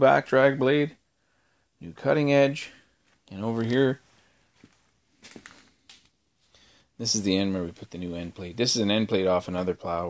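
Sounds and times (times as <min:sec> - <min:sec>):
footsteps on concrete floor: 0:04.6 - 0:05.8.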